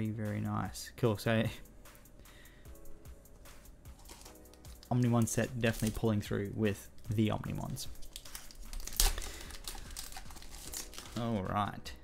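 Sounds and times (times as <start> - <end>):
foil wrapper tearing and crinkling: 4.0 - 5.0, 5.6 - 6.0, 7.7 - 11.4.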